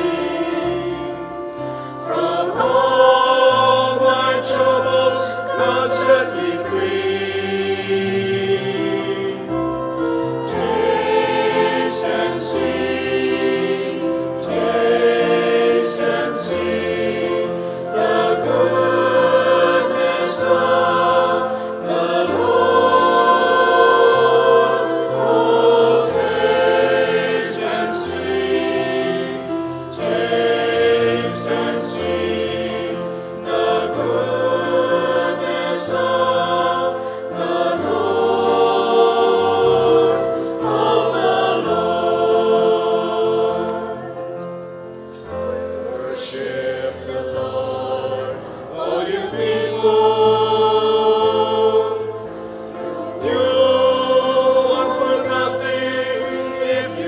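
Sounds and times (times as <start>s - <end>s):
church choir singing a hymn: 0.0s - 57.0s.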